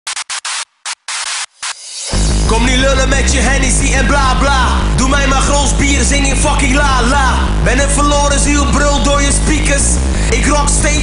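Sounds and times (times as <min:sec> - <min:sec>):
choppy static hiss glitch: 0:00.0 - 0:11.0.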